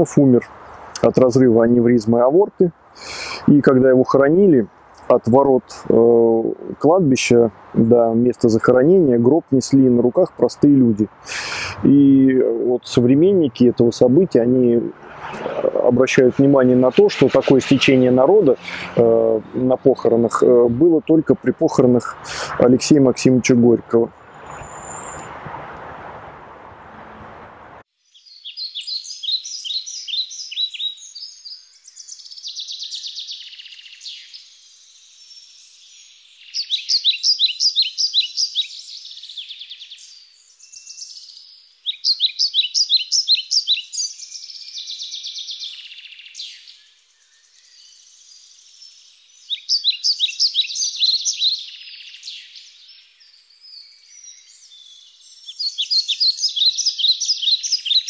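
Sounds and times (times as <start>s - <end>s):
songbird singing: 0.0s - 25.9s, 26.9s - 58.0s.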